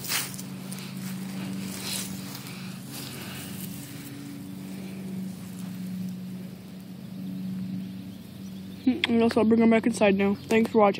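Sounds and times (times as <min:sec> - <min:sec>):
distant lawn mower engine: 0:00.0 - 0:10.9
faint outdoor hiss: 0:00.0 - 0:10.9.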